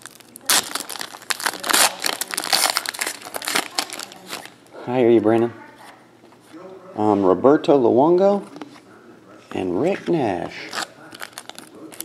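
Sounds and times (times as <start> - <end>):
foil wrapper crinkling: 0.0 - 4.6, 10.4 - 12.0.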